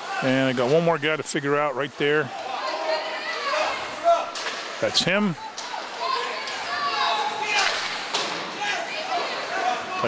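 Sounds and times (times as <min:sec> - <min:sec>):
voices calling and chattering: 0:00.0 - 0:10.0.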